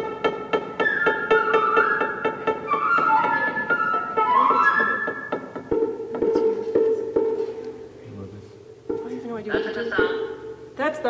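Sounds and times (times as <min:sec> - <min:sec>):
flute playing: 0:00.8 - 0:07.2.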